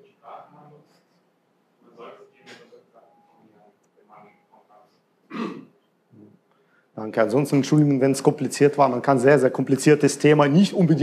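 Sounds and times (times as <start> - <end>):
man clearing his throat: 5.3 - 5.8.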